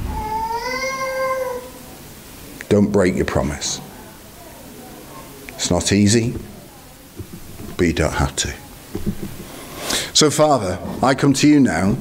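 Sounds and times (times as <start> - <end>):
soft knock: 7.2 - 7.8, 8.9 - 9.5.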